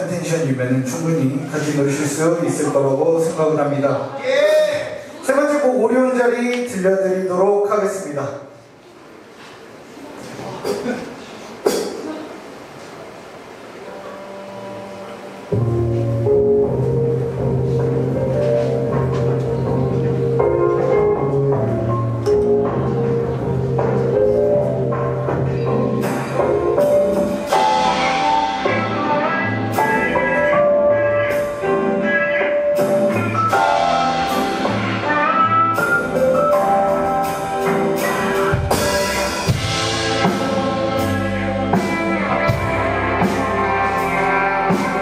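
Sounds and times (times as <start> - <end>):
live rock band playing: 13.9 - 45.0.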